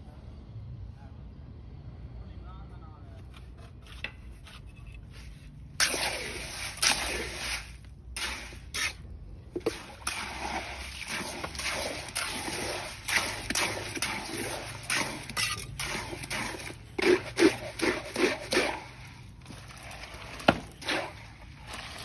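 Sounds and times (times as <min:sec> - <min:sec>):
wet cement being stirred: 0:03.5 - 0:22.0.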